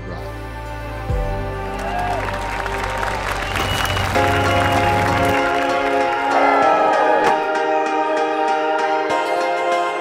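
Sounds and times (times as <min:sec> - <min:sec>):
music playing: 0:00.0 - 0:10.0
guests clapping: 0:01.6 - 0:06.6.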